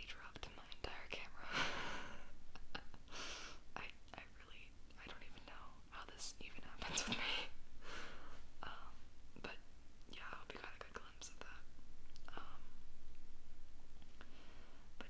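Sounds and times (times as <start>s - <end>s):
woman whispering: 0.0s - 1.4s, 3.8s - 7.6s, 8.6s - 11.7s, 12.3s - 12.7s.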